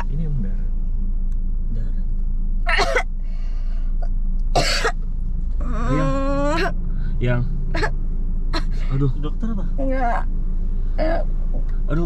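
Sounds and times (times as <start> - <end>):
car cabin hum: 0.0 - 12.0
woman coughing: 2.7 - 3.1, 4.6 - 5.0
woman moaning: 5.6 - 6.8, 11.0 - 11.3.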